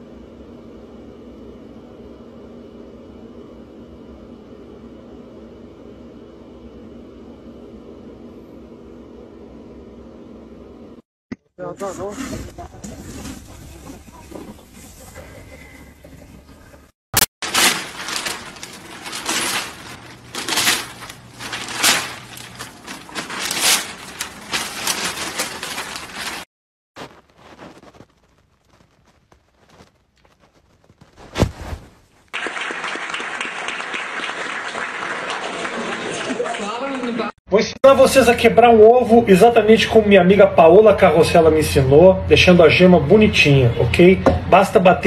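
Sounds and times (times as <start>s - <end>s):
crowd applauding: 32.3s - 37.3s.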